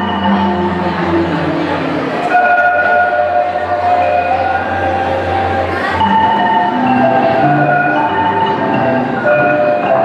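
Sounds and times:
marimba rolled notes: 0:00.0 - 0:10.0.

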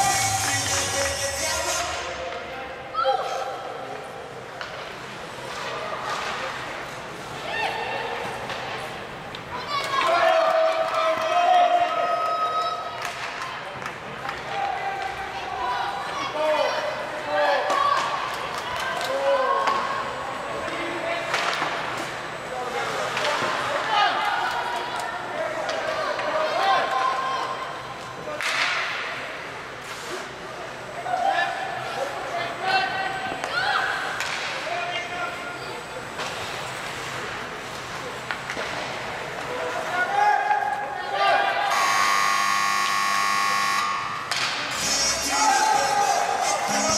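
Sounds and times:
arena buzzer: 0:41.7 - 0:45.9.

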